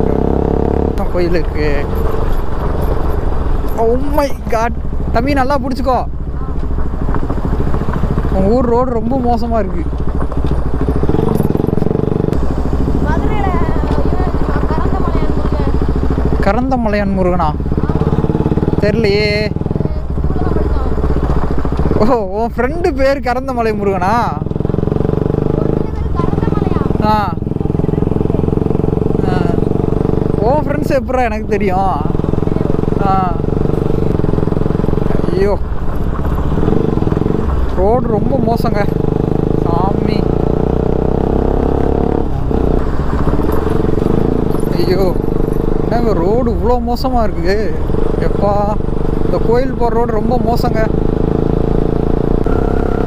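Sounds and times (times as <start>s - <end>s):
low wind rumble: 0.0s - 53.0s
motorcycle engine running: 0.0s - 53.0s.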